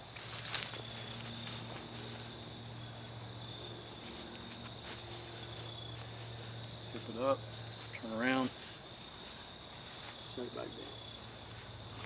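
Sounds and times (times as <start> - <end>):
crickets chirping: 0.0 - 12.0
soft footsteps on grass: 0.0 - 12.0.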